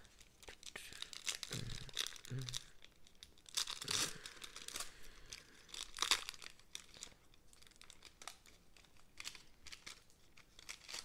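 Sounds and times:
foil wrapper tearing and crinkling: 0.2s - 11.0s.

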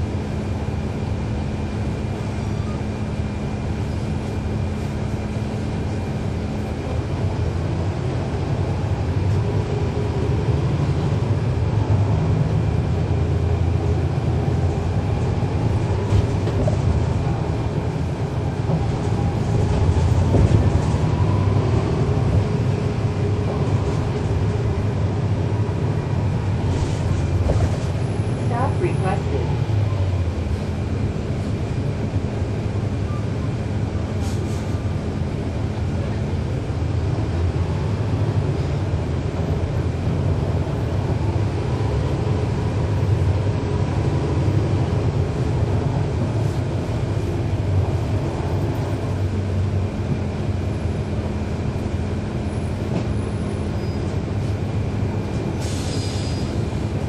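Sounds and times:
bus diesel engine rumbling: 0.0s - 57.0s.

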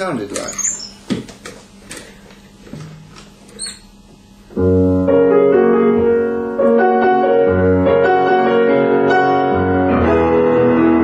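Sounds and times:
chair creaking: 0.2s - 4.2s
short falling squeak: 0.4s - 1.1s, 3.5s - 4.0s.

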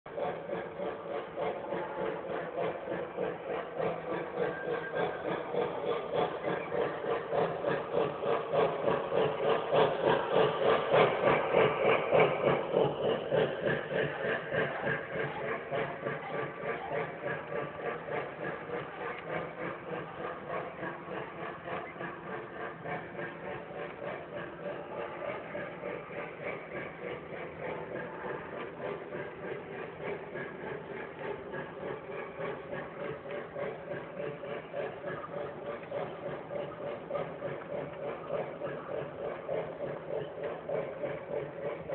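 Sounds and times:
model steam locomotive chuffing: 0.0s - 41.9s
wheels rumbling on track: 0.1s - 41.9s.

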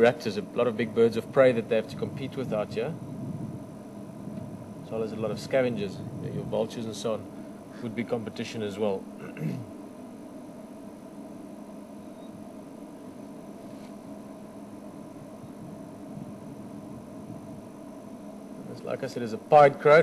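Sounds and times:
low hum with held tones: 0.0s - 20.0s
man clearing throat: 9.2s - 9.7s.

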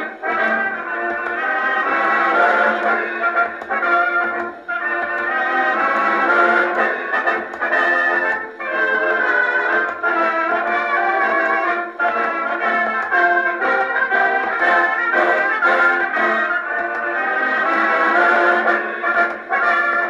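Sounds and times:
brass band march on gramophone: 0.0s - 20.0s.

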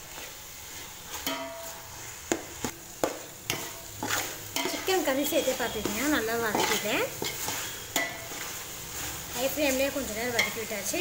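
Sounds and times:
light frying sizzle: 0.0s - 11.0s
metal spoon scraping a pot: 3.5s - 9.2s.

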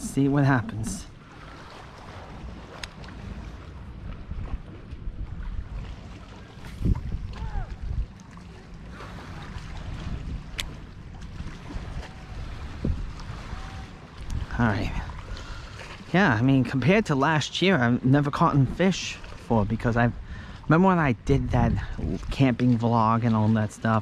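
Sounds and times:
wind buffeting microphone: 0.0s - 17.0s, 19.6s - 22.7s.

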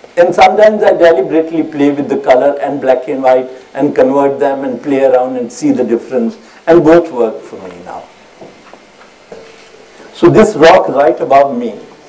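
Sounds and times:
sound system hiss: 0.0s - 12.0s.

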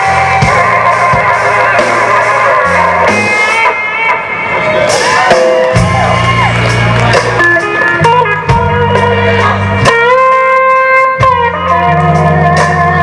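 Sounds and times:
bass guitar: 0.0s - 13.0s
drums: 0.0s - 13.0s
lead electric guitar bending notes: 0.0s - 13.0s.

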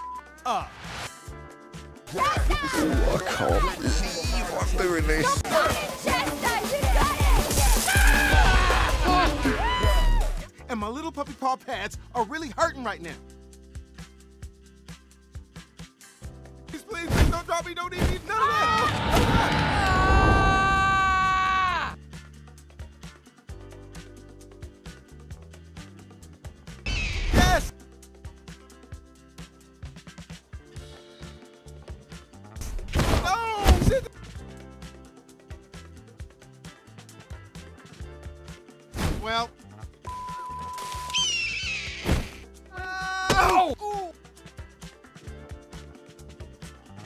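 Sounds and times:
film score music: 0.0s - 47.0s
person screaming: 2.1s - 4.4s, 7.7s - 10.4s, 18.4s - 22.0s, 33.2s - 34.0s, 42.8s - 44.1s
eagle screeching: 41.1s - 42.1s.

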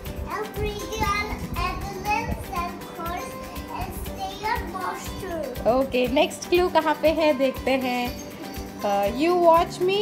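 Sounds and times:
background music: 0.0s - 10.0s
young child speaking: 0.2s - 5.6s.

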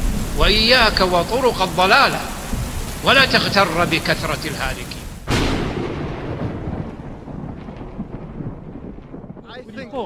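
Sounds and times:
rain hiss: 0.0s - 10.0s
thunder clap and rumble: 0.0s - 10.0s.

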